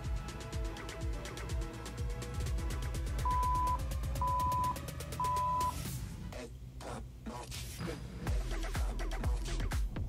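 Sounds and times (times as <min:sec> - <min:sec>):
party music with steady beat: 0:00.0 - 0:07.0, 0:08.3 - 0:10.0
short electronic beeps: 0:03.3 - 0:05.8.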